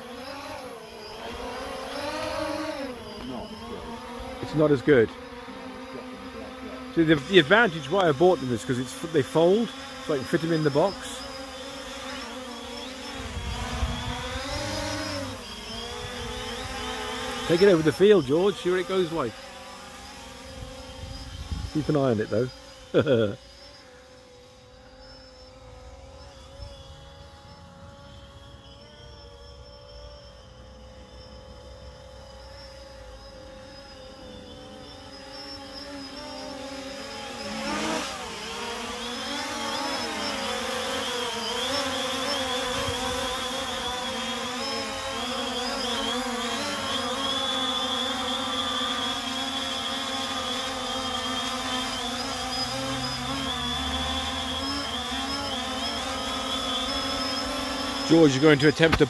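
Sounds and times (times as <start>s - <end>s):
drone motor and propeller whine: 0.0s - 59.0s.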